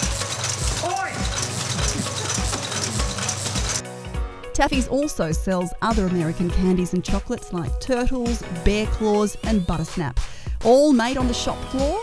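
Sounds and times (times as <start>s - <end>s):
wrapping machine clattering: 0.0s - 3.8s.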